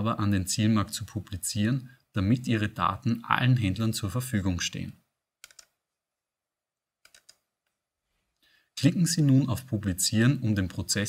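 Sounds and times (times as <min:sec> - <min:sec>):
computer mouse clicks: 0:05.4 - 0:05.8, 0:07.0 - 0:07.8.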